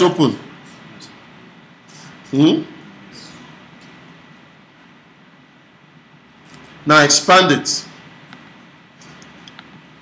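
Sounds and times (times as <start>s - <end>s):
thin high whine: 0.0s - 5.4s
steady low hiss: 0.0s - 10.0s.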